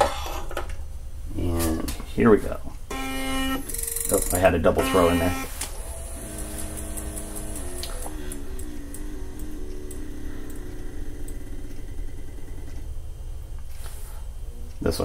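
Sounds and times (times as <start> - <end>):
powder trickler motors whining: 2.9 - 13.8
faint ticking: 5.9 - 13.6.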